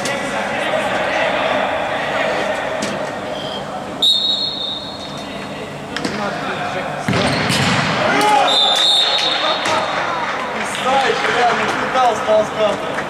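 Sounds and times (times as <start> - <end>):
referee's whistle blasts: 3.4 - 5.2, 8.4 - 9.6.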